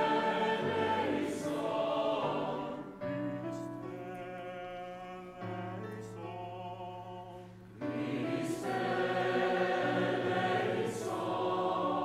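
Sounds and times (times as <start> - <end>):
church choir singing: 0.0 - 12.0.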